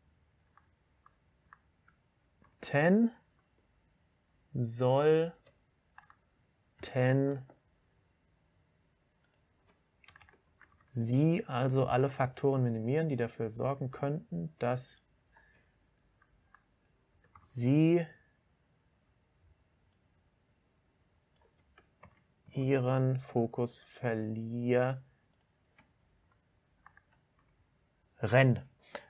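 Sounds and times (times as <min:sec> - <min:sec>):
computer keyboard clicks: 0:00.4 - 0:02.6, 0:05.2 - 0:06.2, 0:09.2 - 0:10.9, 0:21.4 - 0:22.3, 0:25.3 - 0:27.6
computer keyboard key clicks: 0:10.0 - 0:10.9.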